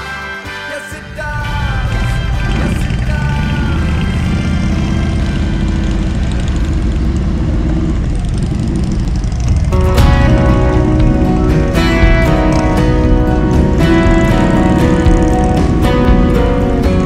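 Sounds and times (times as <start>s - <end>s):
music: 0.0s - 6.2s, 9.5s - 17.0s
motorcycle engines rumbling: 1.1s - 17.0s.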